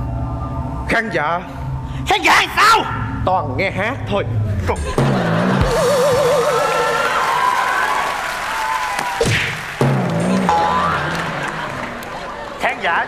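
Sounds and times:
studio audience laughing: 4.7s - 7.4s, 10.2s - 12.7s
stage music: 5.0s - 12.6s
audience applauding: 5.6s - 13.0s.

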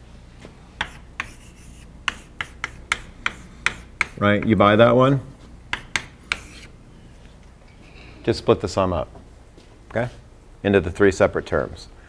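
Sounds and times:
chalk tapping and scratching on blackboard: 0.8s - 4.6s, 5.7s - 6.7s.

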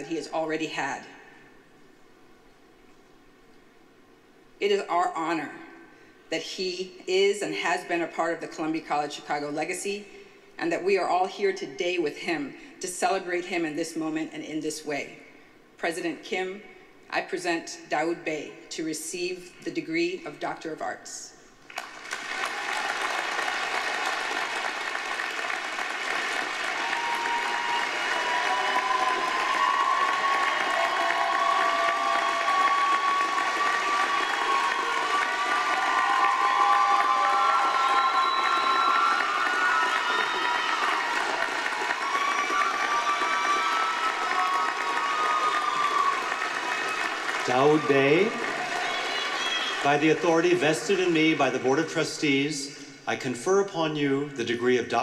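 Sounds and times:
people cheering: 0.0s - 0.3s, 21.8s - 51.6s
audience applauding: 21.7s - 51.6s
man speaking: 49.8s - 55.0s.

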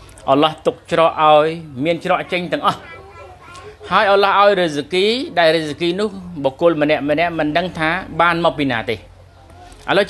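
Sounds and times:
man speaking: 0.2s - 9.1s
children's voices: 1.8s - 4.8s.

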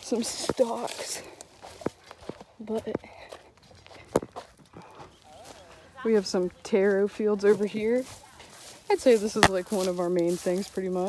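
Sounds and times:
footsteps on dry straw: 0.0s - 11.0s.

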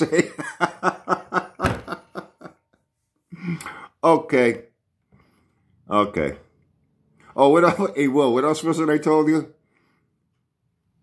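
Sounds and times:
man chuckling: 0.0s - 3.9s.

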